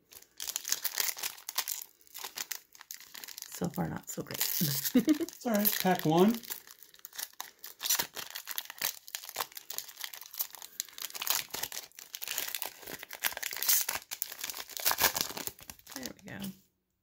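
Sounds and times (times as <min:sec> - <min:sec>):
foil wrapper crinkling and tearing: 0:00.0 - 0:16.5.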